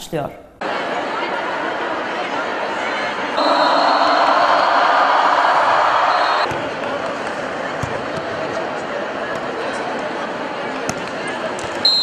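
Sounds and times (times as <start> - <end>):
crowd shouting in a hall: 0.6 - 12.0
thin high tone: 3.4 - 6.5.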